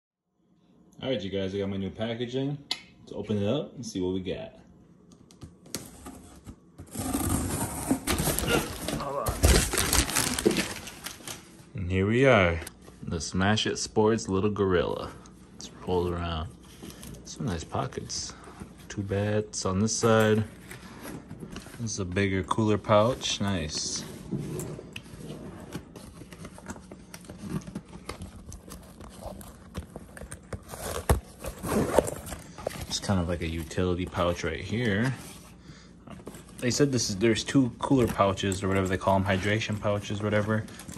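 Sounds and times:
plastic wrapping rustling: 7.2 - 11.7
packing tape being slit: 27.2 - 32.5.

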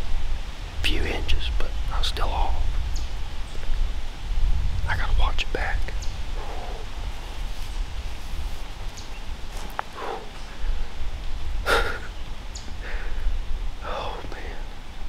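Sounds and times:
soft rustles: 6.8 - 10.6
breaths: 9.9 - 10.8, 12.8 - 13.4.

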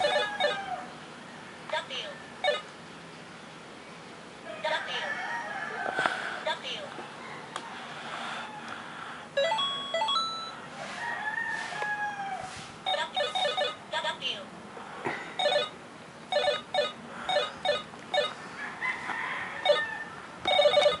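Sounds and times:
electronic beeping tune: 9.4 - 10.6, 20.5 - 21.0.

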